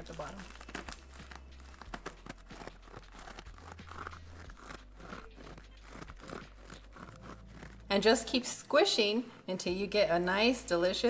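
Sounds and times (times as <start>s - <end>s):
slush crackling and crunching: 0.0s - 10.0s.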